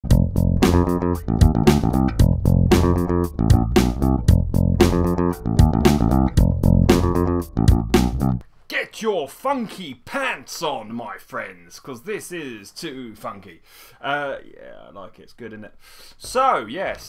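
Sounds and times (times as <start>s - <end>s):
electric bass guitar riff: 0.0s - 8.4s.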